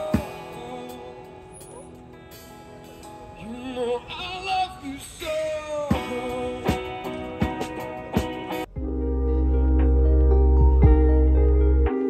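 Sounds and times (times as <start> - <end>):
man singing into a microphone: 0.0 - 1.9, 3.3 - 7.3
electric guitar: 5.2 - 12.0.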